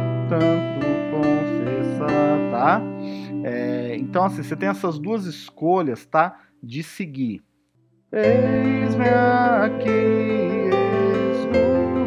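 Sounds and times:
electronic keyboard melody: 0.0 - 6.0, 8.1 - 12.0.

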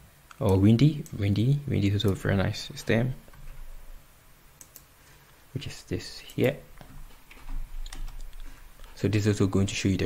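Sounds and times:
low steady hum: 0.0 - 10.0
computer clicks: 4.6 - 4.9, 6.2 - 8.5.

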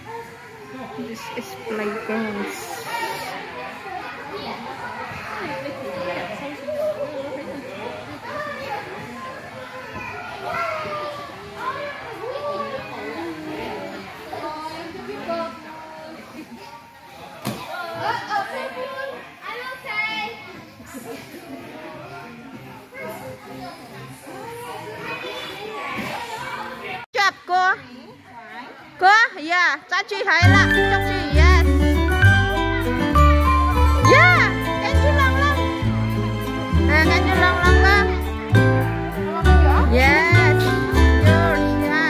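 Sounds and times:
children's voices chattering: 0.0 - 42.0.

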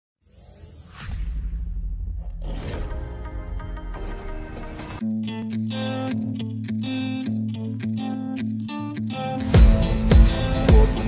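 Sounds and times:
whoosh: 0.2 - 3.8.

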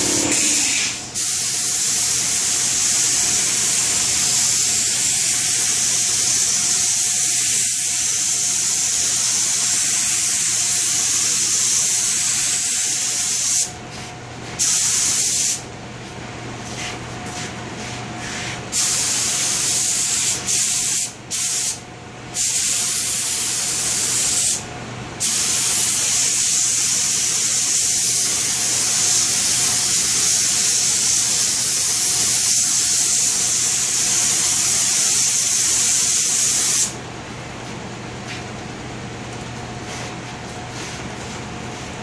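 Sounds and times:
spray gun hissing: 0.0 - 13.7, 14.6 - 15.6, 25.2 - 37.0.

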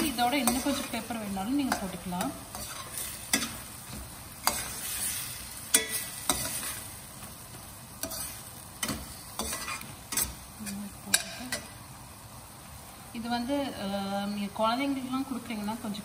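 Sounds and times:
spoon scraping and knocking pan: 0.0 - 7.3, 8.0 - 11.8
food sizzling in a pan: 0.0 - 16.0.

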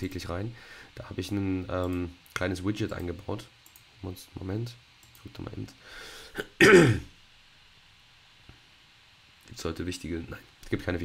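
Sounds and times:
man clearing his throat: 6.4 - 7.1.

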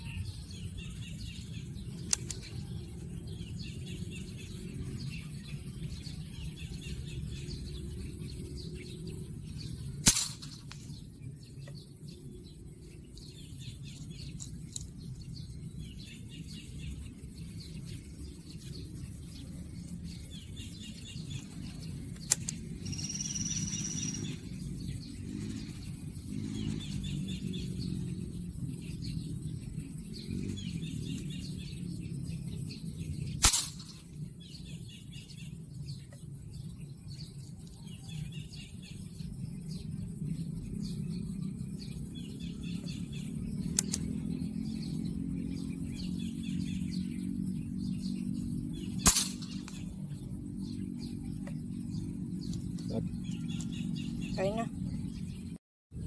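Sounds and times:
birds chirping: 0.0 - 56.0
air rifle firing crack: 10.0 - 10.7, 33.4 - 34.0, 49.0 - 49.8.

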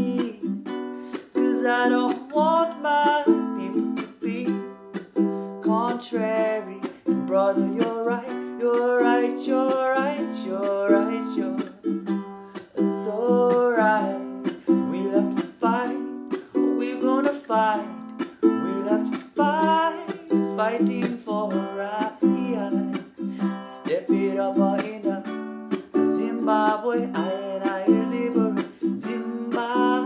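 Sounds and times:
man singing: 0.0 - 30.0
ukulele strumming: 0.0 - 30.0.

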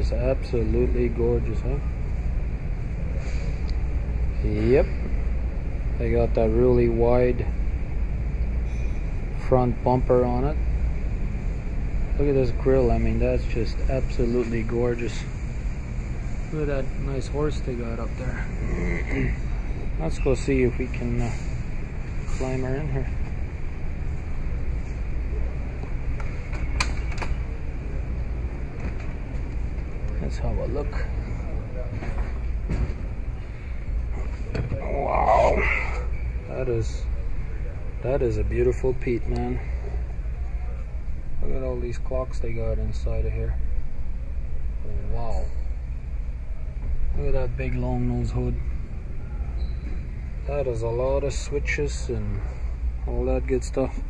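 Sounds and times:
steady low rumble: 0.0 - 54.0.

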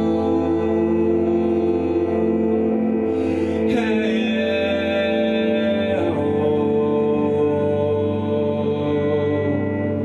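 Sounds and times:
band instruments sustaining chords: 0.0 - 10.0
man singing long note: 0.0 - 10.0.

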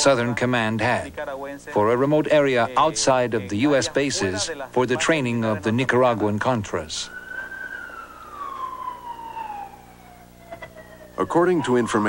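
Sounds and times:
steady low hum: 0.0 - 12.0
siren wailing: 6.9 - 12.0.

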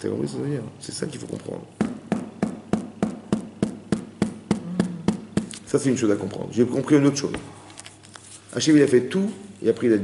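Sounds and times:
sharp taps on hard surface: 1.8 - 5.6.

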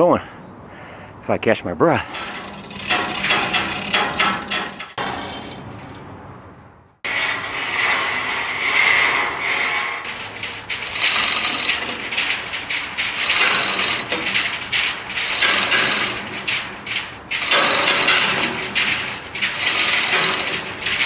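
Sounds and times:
chain hoist ratcheting clicks: 2.1 - 5.0, 10.8 - 14.4, 15.2 - 16.3, 17.3 - 18.7, 19.4 - 21.0
chain rattling: 2.1 - 6.6, 10.4 - 21.0.

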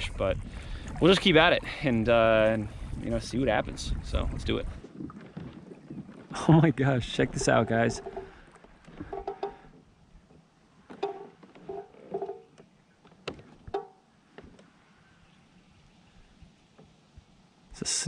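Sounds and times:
kayak and paddle clunks and squeaks: 4.3 - 15.6.

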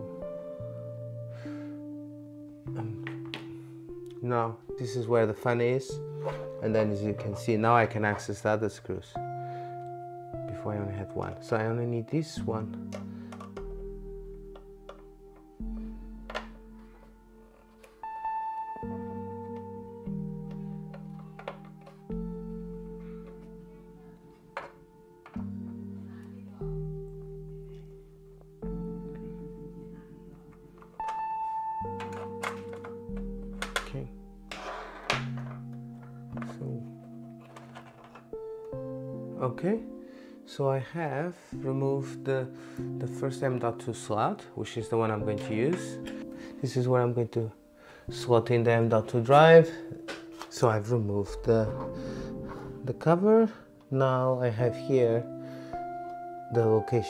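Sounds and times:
soft sustained chord music: 0.0 - 57.0
metal cover scraping: 34.5 - 38.4.

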